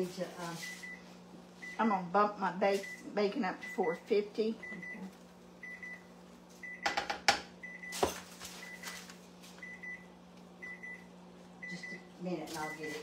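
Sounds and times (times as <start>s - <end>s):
steady low hum: 0.0s - 13.0s
oven alert beeps: 0.5s - 7.0s, 7.6s - 13.0s.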